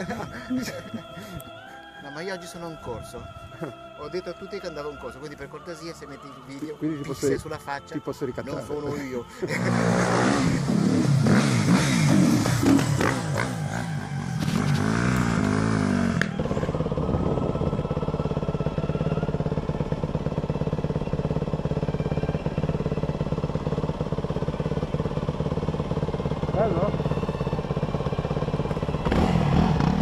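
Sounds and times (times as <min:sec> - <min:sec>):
motorcycle engine revving: 0:08.6 - 0:30.0
dirt bike engine at low revs: 0:08.7 - 0:30.0.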